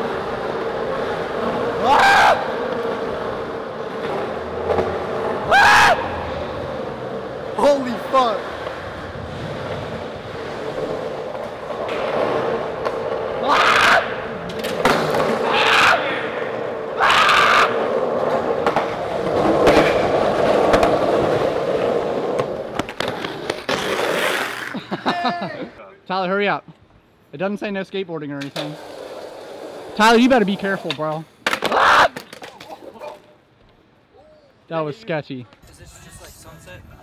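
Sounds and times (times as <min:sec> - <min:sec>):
skateboard wheels rolling on concrete: 0:00.0 - 0:25.8, 0:28.2 - 0:34.0.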